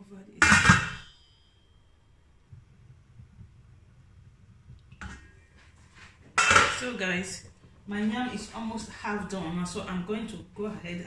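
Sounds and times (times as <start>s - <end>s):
pot lid metallic clatter: 0.4s - 1.1s, 6.4s - 6.9s.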